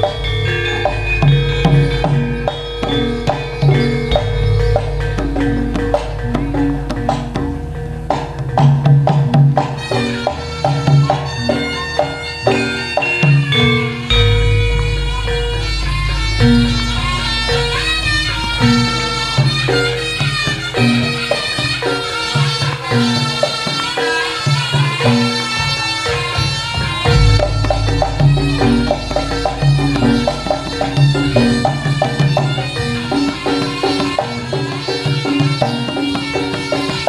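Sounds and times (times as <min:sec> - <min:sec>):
shrill reed-wind melody: 0:00.0 - 0:08.6, 0:09.6 - 0:37.0
drum strokes: 0:00.0 - 0:37.0
gamelan music: 0:00.0 - 0:37.0
ringing metal-keyed notes: 0:00.0 - 0:37.0.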